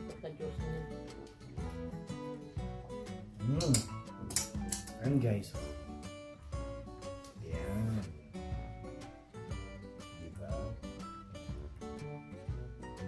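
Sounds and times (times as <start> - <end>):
plucked acoustic guitar tune: 0.0 - 13.0.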